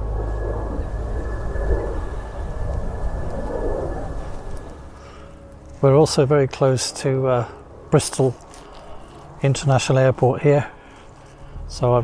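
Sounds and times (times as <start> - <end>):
aircraft flying low overhead: 0.0 - 12.0
low wind rumble: 0.0 - 12.0.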